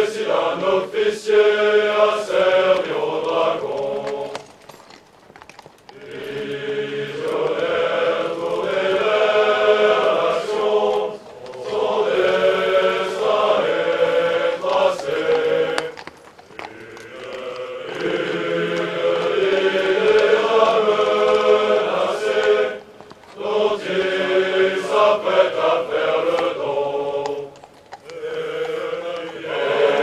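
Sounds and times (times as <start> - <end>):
large group singing together: 0.0 - 4.5, 5.9 - 30.0.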